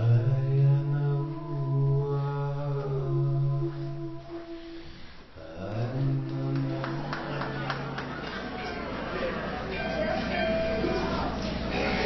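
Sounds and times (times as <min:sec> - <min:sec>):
low voice chanting a drone: 0:00.0 - 0:04.8, 0:05.4 - 0:08.2.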